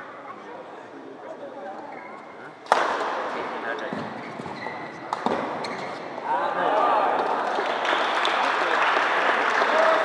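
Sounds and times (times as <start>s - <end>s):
crowd applauding: 7.3s - 10.0s.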